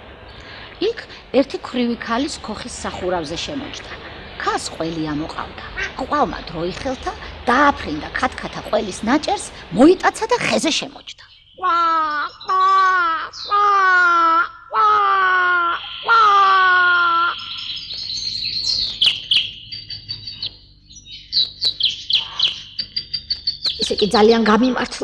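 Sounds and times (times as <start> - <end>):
birds chirping: 0.0 - 25.0
woman wailing: 11.7 - 17.4.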